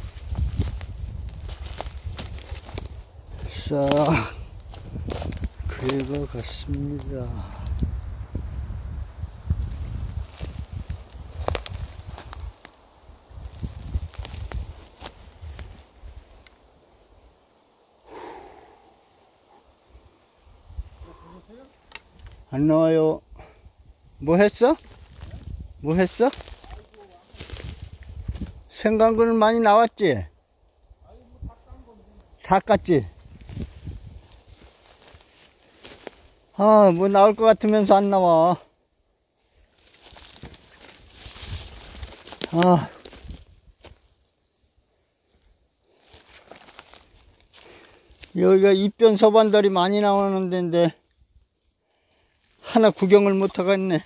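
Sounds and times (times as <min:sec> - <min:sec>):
footsteps on pine needles: 0:00.0 - 0:07.1, 0:09.6 - 0:16.0, 0:24.8 - 0:28.6, 0:33.2 - 0:36.5, 0:39.5 - 0:44.1, 0:46.0 - 0:48.6
footsteps on leaf litter: 0:03.6 - 0:06.5, 0:39.8 - 0:43.4.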